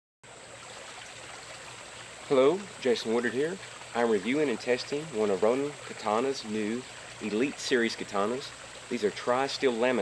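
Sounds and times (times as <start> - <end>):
outdoor background hiss: 0.2 - 10.0.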